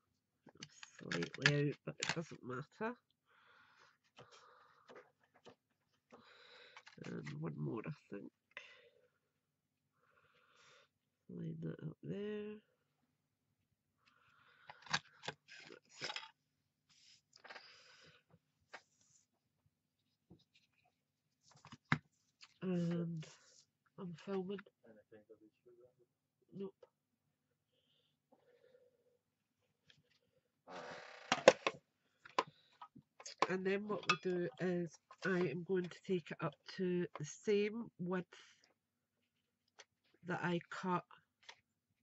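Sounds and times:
plastic clacks and knocks: 31.3s - 34.4s.

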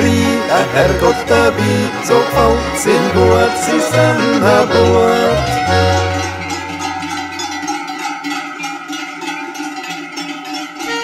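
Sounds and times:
cowbells clanging: 0.0s - 11.0s.

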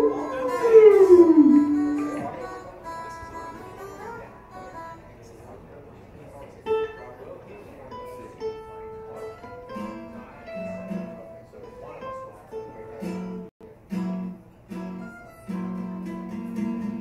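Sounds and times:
acoustic guitar picking: 0.0s - 5.0s, 7.9s - 17.0s.

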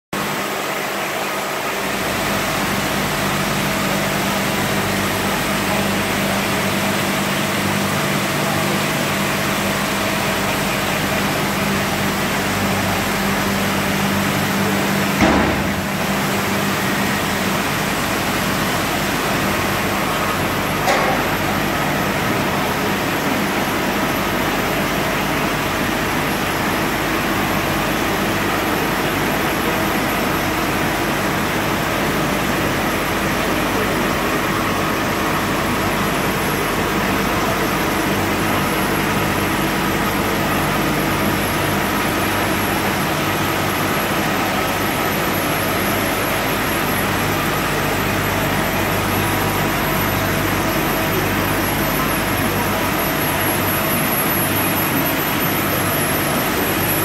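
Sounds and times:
label press humming and whirring: 0.2s - 57.0s
short knock: 15.2s - 15.9s.

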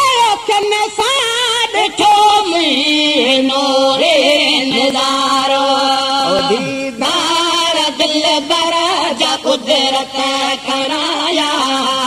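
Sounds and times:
person singing devotional song: 0.0s - 12.0s.

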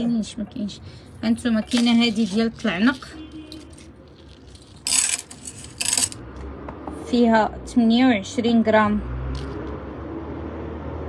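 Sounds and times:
metal chains jingling: 2.1s - 6.2s.

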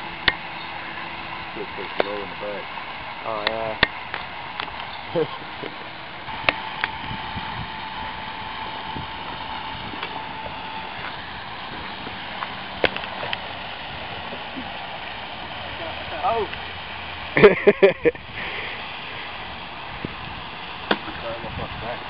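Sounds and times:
outdoor hiss: 0.0s - 22.0s
sharp clicks and knocks: 3.4s - 4.9s.

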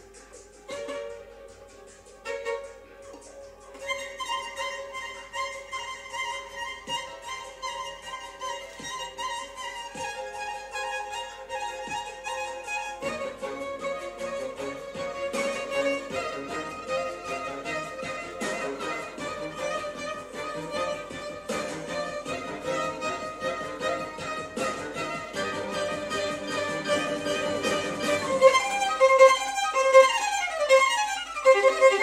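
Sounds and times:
violin playing slow melody: 0.4s - 32.0s.

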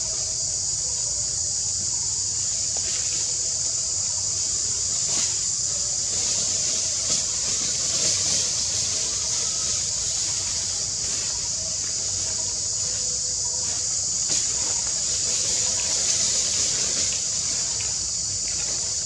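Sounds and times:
insect chorus drone: 0.0s - 19.0s.

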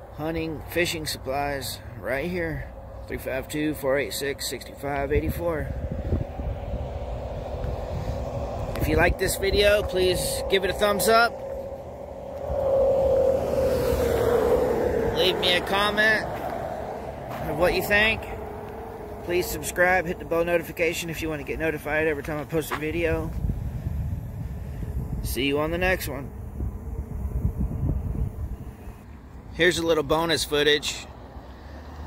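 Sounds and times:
wind buffeting microphone: 0.0s - 29.0s
vehicle passing on highway: 0.0s - 32.0s.

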